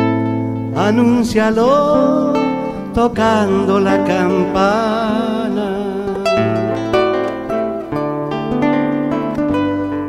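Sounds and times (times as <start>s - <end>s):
acoustic guitar plucking: 0.0s - 10.0s.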